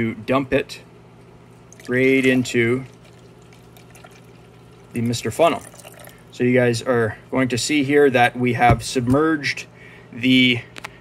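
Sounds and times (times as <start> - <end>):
water pouring into funnel: 1.7 - 6.3.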